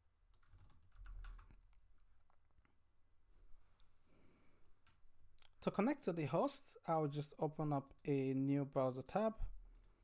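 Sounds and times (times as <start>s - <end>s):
computer keyboard typing: 0.3s - 1.7s.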